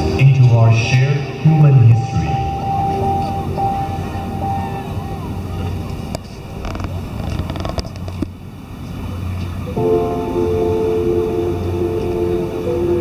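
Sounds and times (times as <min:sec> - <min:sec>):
held higher tone: 0:00.0 - 0:06.1, 0:09.8 - 0:13.0
low steady drone: 0:00.0 - 0:13.0.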